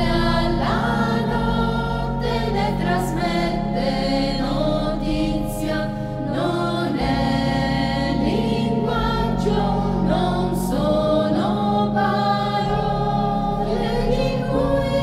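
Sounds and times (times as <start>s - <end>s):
choir singing a hymn: 0.0s - 15.0s
low accompaniment: 0.0s - 15.0s.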